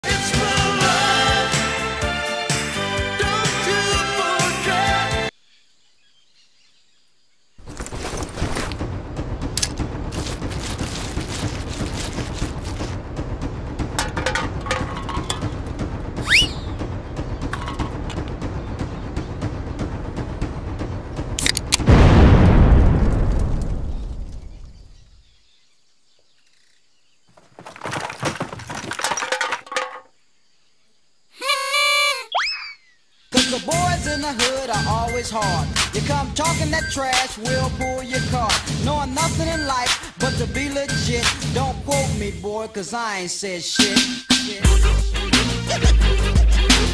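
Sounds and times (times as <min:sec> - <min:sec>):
soft birdsong: 0:05.3 - 0:08.6, 0:15.1 - 0:21.3, 0:23.5 - 0:27.7, 0:30.1 - 0:31.4, 0:32.3 - 0:41.2
scattered clattering: 0:07.6 - 0:24.6, 0:27.3 - 0:30.1
loud shattering crash: 0:07.6 - 0:25.0, 0:27.4 - 0:30.0
loud busy sharp hits: 0:08.4 - 0:23.2
music with steady beat: 0:43.8 - 0:46.9.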